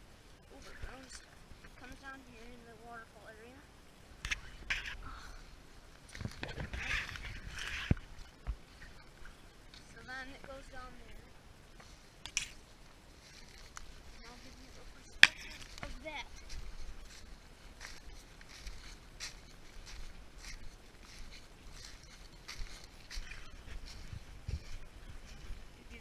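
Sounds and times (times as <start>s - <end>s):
footsteps through dry undergrowth: 5.9s - 26.0s.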